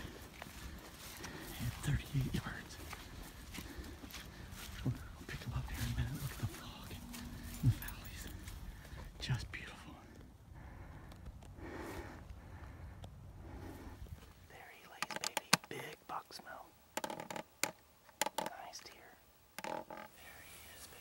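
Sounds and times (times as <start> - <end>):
footsteps in dry leaves: 0.0 - 9.1
soft whispering: 0.0 - 10.3, 13.4 - 16.8, 18.3 - 21.0
low steady rumble: 0.0 - 15.4.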